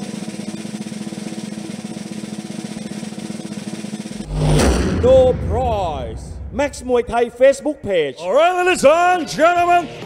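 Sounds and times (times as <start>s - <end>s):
cymbal crash: 4.2s - 7.7s
loud hit with deep boom: 4.2s - 7.7s.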